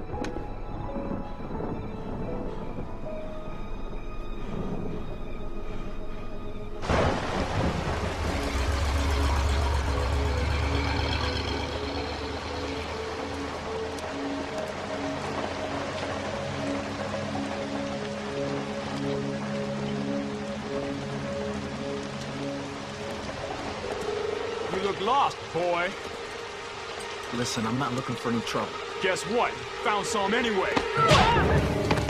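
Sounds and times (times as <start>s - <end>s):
thunder rumbling: 0.0s - 18.8s
heavy rain: 0.0s - 32.0s
orchestral film score: 0.0s - 32.0s.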